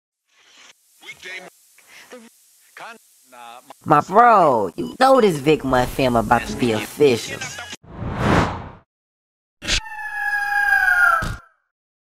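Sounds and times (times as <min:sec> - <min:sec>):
bird screech: 0:09.6 - 0:11.6.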